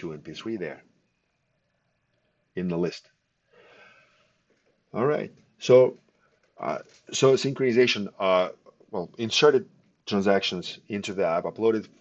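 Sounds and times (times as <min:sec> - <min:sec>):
man speaking: 0:00.0 - 0:00.9, 0:02.6 - 0:03.1, 0:04.9 - 0:06.0, 0:06.6 - 0:12.0
man breathing in softly: 0:03.4 - 0:04.5.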